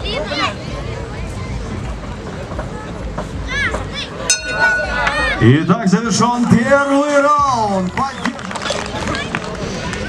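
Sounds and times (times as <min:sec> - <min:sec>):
indistinct spectators talking: 0:00.0 - 0:10.0.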